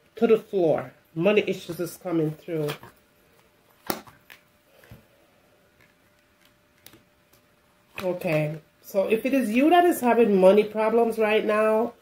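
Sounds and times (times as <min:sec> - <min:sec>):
cards being handled: 0:02.2 - 0:05.1, 0:05.8 - 0:08.6.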